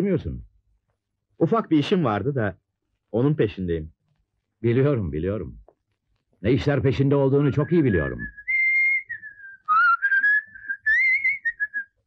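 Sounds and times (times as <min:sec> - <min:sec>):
person whistling a call: 0:07.5 - 0:12.0.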